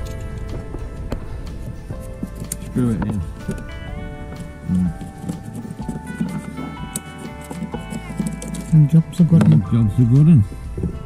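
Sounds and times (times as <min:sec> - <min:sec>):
instrumental background music: 0:00.0 - 0:11.0.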